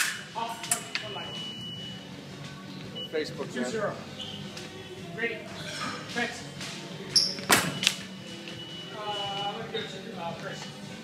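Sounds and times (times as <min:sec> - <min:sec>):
indistinct voices: 0:00.4 - 0:11.0.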